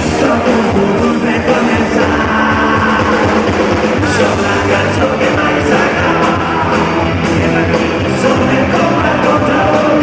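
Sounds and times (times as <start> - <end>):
drums: 0.0 - 10.0
electric guitars: 0.0 - 10.0
ska rock band playing: 0.0 - 10.0.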